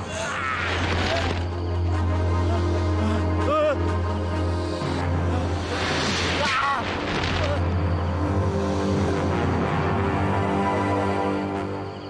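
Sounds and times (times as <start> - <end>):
low drone: 0.0 - 12.0.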